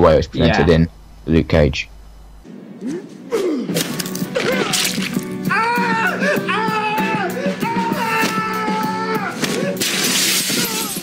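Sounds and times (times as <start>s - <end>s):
crash of something breaking: 3.8s - 5.2s, 9.8s - 11.0s.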